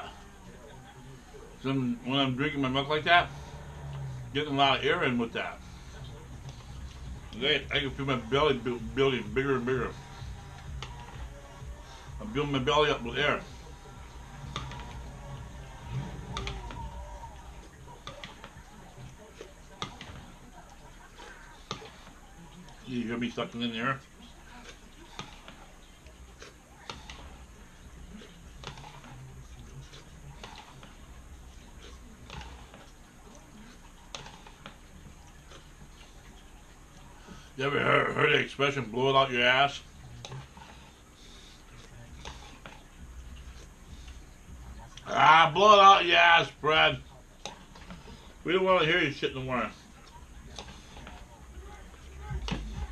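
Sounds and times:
quiet chewing: 0:00.0 - 0:37.6, 0:38.2 - 0:45.1, 0:46.9 - 0:52.9
slurping: 0:00.0 - 0:52.9.

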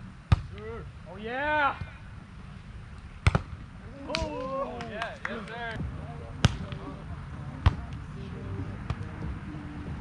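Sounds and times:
volleyball slaps: 0:03.2 - 0:05.2, 0:06.4 - 0:06.8.

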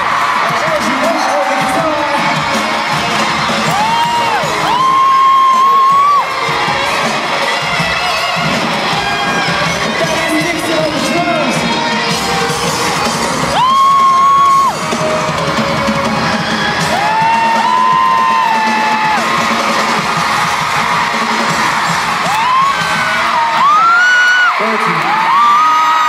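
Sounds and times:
crowd cheering and screaming: 0:00.0 - 0:26.0
live pop band playing: 0:00.0 - 0:26.0.

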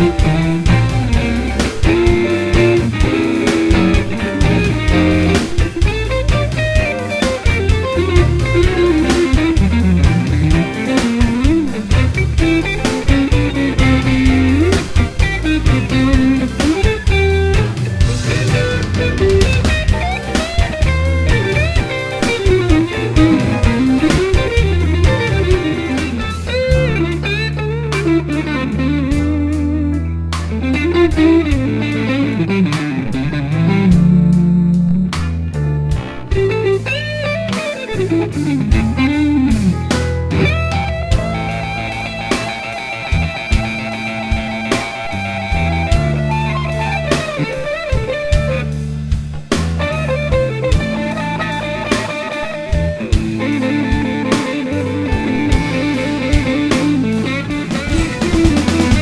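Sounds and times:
bass guitar: 0:00.0 - 0:59.0
drums: 0:00.0 - 0:59.0
electric guitar solo with bent notes: 0:00.0 - 0:59.0.

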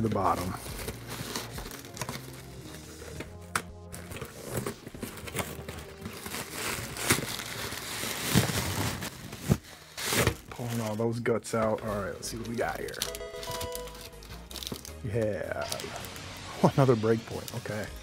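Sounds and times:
cardboard rustling and crinkling: 0:00.0 - 0:16.2
background music: 0:00.0 - 0:18.0
cardboard tearing: 0:00.4 - 0:11.0.

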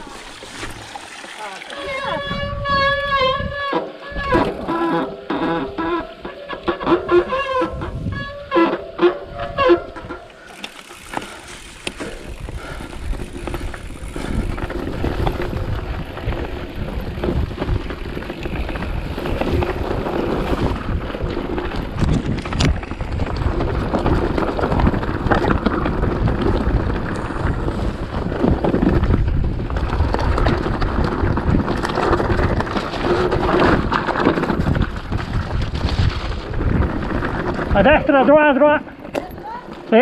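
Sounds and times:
mountain bike rumbling on dirt: 0:00.0 - 0:40.0
wind on microphone: 0:01.8 - 0:04.7, 0:07.0 - 0:08.6, 0:12.1 - 0:38.1.

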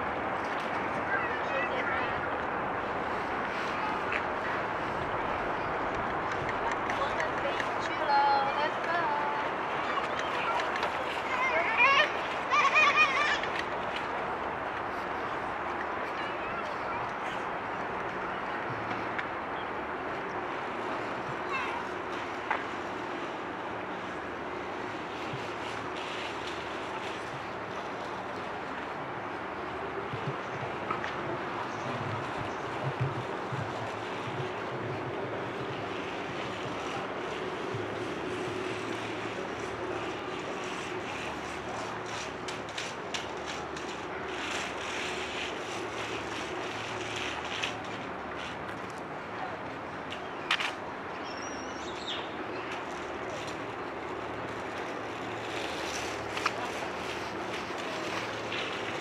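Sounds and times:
distant traffic and machinery hum: 0:00.0 - 0:59.0.

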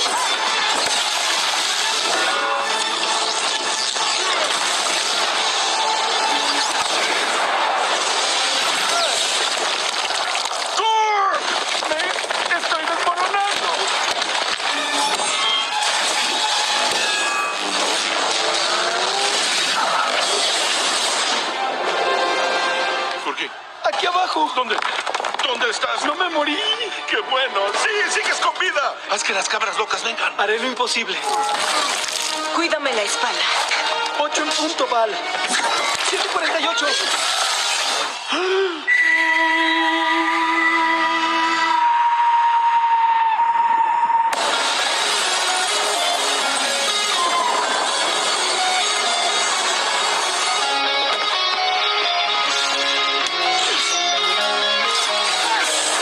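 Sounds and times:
loud crash with shattering: 0:03.1 - 0:10.8, 0:13.5 - 0:21.6, 0:44.3 - 0:50.5.

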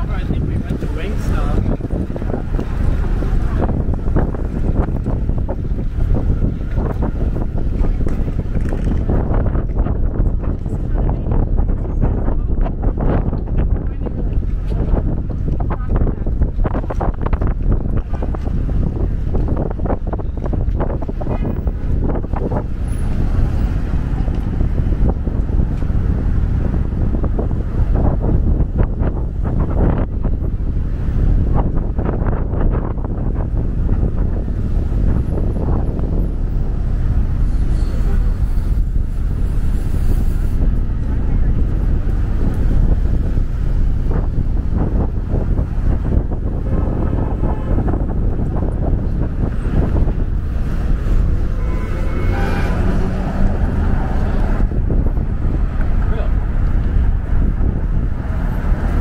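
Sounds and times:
passing voices: 0:00.0 - 0:59.0
traffic: 0:00.0 - 0:59.0
wind buffeting microphone: 0:00.0 - 0:59.0.

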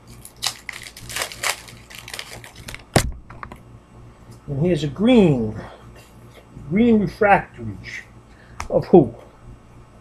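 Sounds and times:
cards and wrapper crinkling: 0:00.0 - 0:03.1.

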